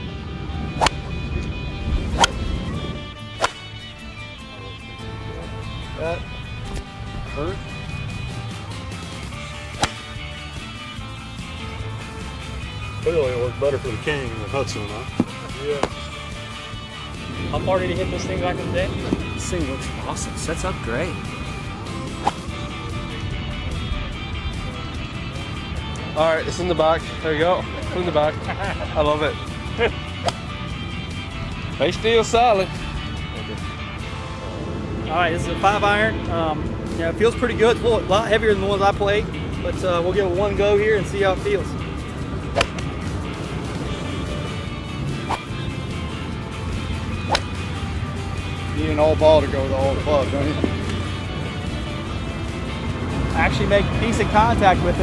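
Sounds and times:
background music: 0:00.0 - 0:55.0
golf club striking ball: 0:00.7 - 0:02.6, 0:03.2 - 0:04.0, 0:09.0 - 0:11.2, 0:15.1 - 0:16.6, 0:21.2 - 0:22.7, 0:30.1 - 0:30.8, 0:42.5 - 0:43.0, 0:45.1 - 0:48.8.

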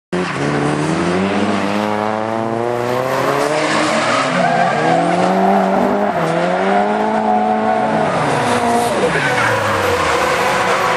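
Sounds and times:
car engine at high revs: 0:00.2 - 0:10.9
tyres squealing and skidding: 0:03.0 - 0:10.9.

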